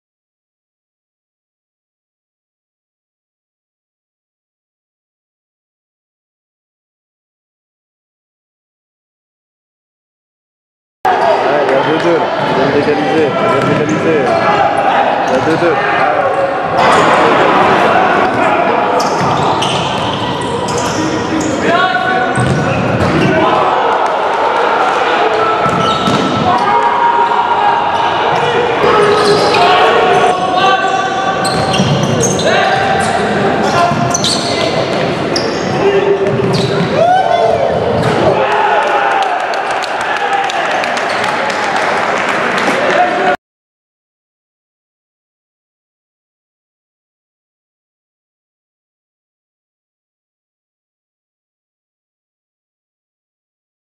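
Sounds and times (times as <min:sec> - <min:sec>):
players shouting: 0:11.1 - 0:43.4
ball kicked and bouncing: 0:22.4 - 0:23.2.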